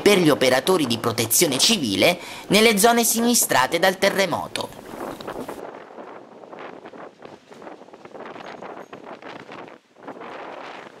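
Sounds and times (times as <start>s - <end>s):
wind gusting across microphone: 0.0s - 11.0s.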